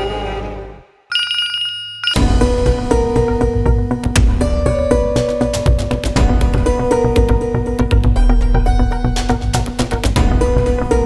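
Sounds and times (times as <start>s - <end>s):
phone electronic ringtone: 1.1s - 2.2s
loud background music: 2.2s - 11.0s.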